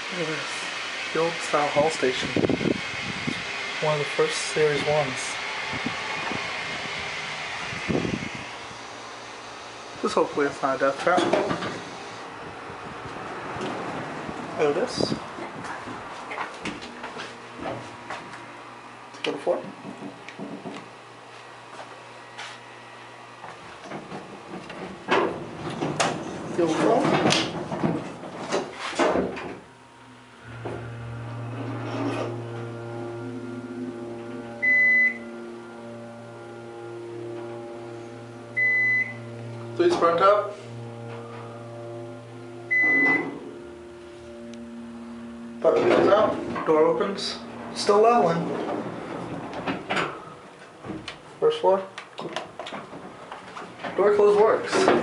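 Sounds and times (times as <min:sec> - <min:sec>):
hydraulic pump motor humming: 0:00.0 - 0:21.2, 0:23.7 - 0:51.4
elevator doors closing: 0:23.8 - 0:29.6, 0:30.4 - 0:51.3
short high beeps: 0:34.5 - 0:35.4, 0:38.6 - 0:39.4, 0:42.6 - 0:48.4.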